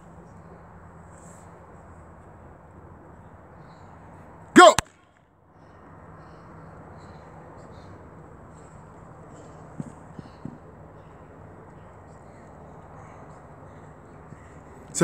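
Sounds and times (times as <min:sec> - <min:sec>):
outdoor background noise: 0:00.0 - 0:15.0.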